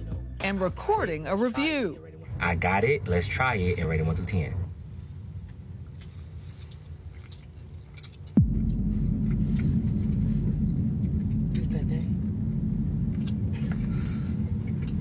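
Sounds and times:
deep sustained rumble: 0.0s - 15.0s
falling bass-drop effect: 8.4s - 15.0s.

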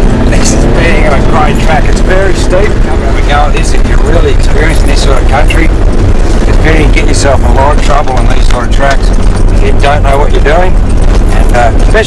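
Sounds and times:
car engine rumbling: 0.0s - 12.0s
person talking: 9.6s - 12.0s.

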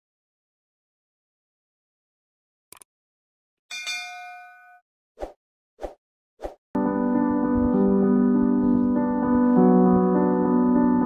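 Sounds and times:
bright bell chime: 3.7s - 4.8s.

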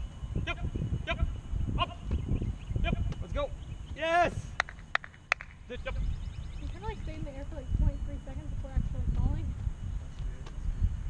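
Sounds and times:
wind rumbling on microphone: 0.0s - 11.0s
people shouting calls: 2.8s - 4.7s.

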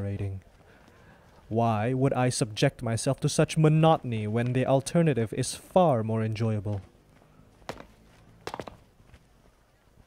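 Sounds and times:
sharp footsteps: 7.2s - 9.3s.

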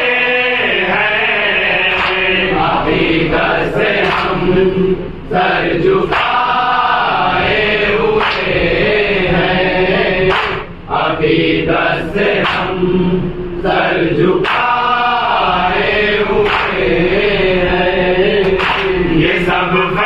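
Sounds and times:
men chanting together: 0.0s - 20.0s.

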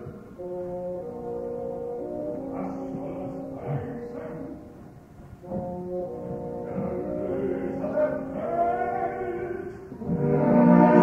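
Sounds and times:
orchestra playing sustained chords: 0.0s - 11.0s.

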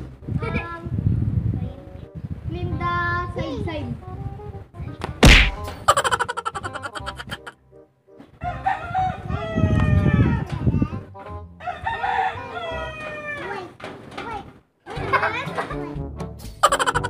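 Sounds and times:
rooster crowing: 8.4s - 10.4s, 11.6s - 13.6s.

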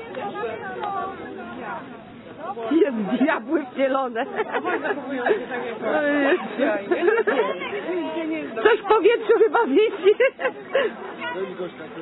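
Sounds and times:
people chatting: 0.0s - 12.0s.

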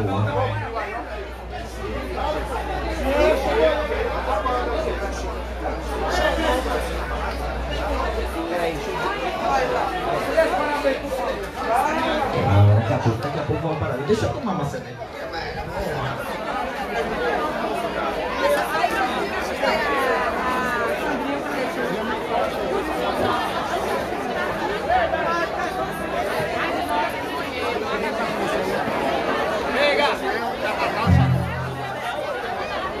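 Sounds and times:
crowd talking: 0.0s - 33.0s.

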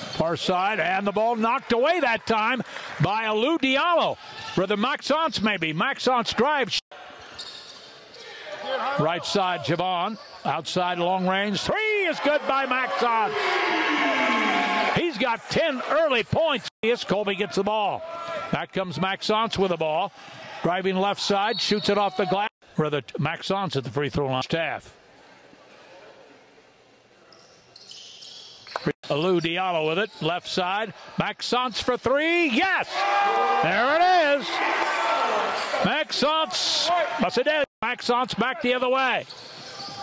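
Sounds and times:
man commentating: 0.0s - 6.8s, 8.7s - 24.9s, 29.0s - 34.7s, 35.8s - 39.3s
players and crowd haze: 0.0s - 23.7s, 24.9s - 40.0s
man talking: 0.1s - 6.8s, 8.7s - 13.5s, 14.9s - 24.9s, 29.0s - 32.9s, 33.6s - 34.6s, 35.8s - 39.2s.

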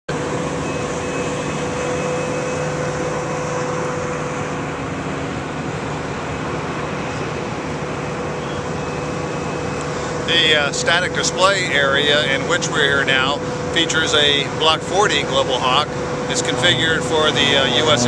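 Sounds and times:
steady machine drone: 0.1s - 18.0s.

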